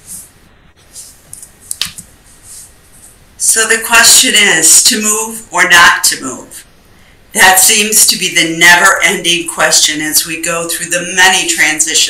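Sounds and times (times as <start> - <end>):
low background noise: 0.0 - 12.0.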